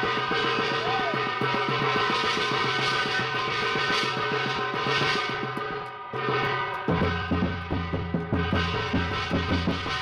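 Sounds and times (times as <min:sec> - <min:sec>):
fast percussion strokes: 0:00.0 - 0:10.0.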